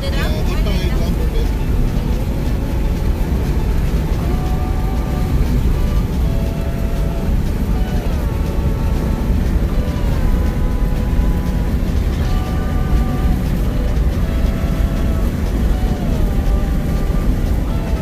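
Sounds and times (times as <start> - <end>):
faint voices or musical tones: 0.0 - 18.0
tyre and wind rumble: 0.0 - 18.0.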